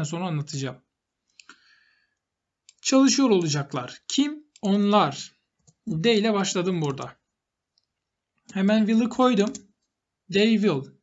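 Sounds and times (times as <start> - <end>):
person speaking: 0.0 - 1.5, 2.4 - 11.0
computer mouse click: 2.6 - 4.8, 6.7 - 8.6, 9.4 - 10.0.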